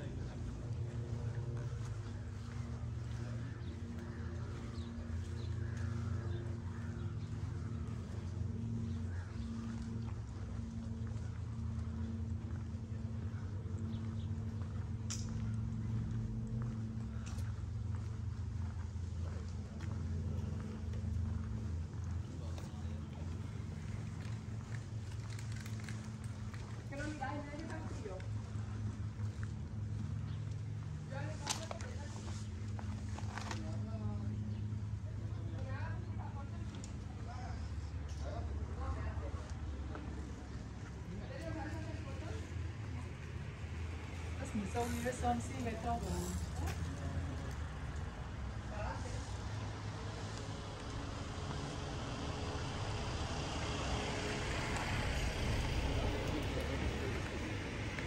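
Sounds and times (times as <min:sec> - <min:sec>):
low rumble: 0:00.0 - 0:27.2
faint voices: 0:00.0 - 0:58.0
steady low hum: 0:00.0 - 0:58.0
people talking: 0:26.9 - 0:28.3, 0:44.3 - 0:47.6, 0:55.2 - 0:57.7.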